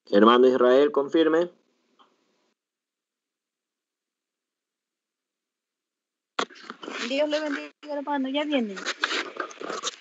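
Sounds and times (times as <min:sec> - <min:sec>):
person speaking: 0:06.8 - 0:09.2.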